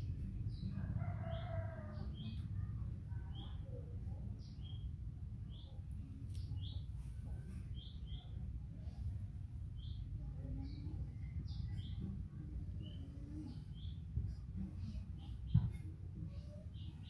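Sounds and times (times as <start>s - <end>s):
small birds chirping: 0.2s - 17.0s.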